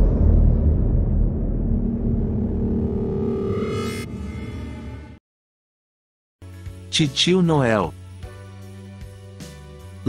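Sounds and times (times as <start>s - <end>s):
deep rumbling sound effect: 0.0s - 5.2s.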